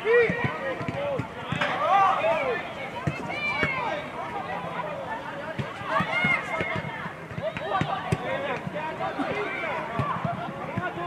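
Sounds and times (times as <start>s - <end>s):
voices shouting: 0.0s - 11.0s.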